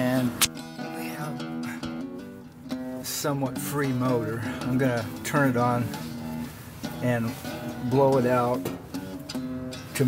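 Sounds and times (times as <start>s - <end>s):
acoustic guitar notes: 0.0s - 10.0s.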